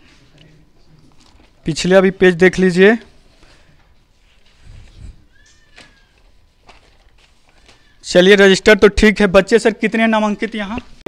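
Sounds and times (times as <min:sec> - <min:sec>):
faint animal call: 0:05.2 - 0:06.4.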